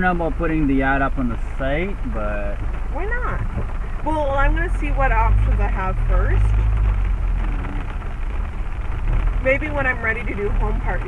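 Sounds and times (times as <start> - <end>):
car rumbling on wet road: 0.0 - 11.0
heavy rain on car windshield: 0.0 - 11.0.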